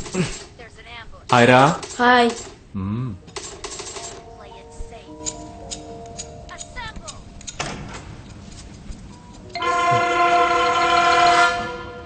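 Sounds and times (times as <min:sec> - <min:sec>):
loud horn-like chord: 0:09.6 - 0:12.0.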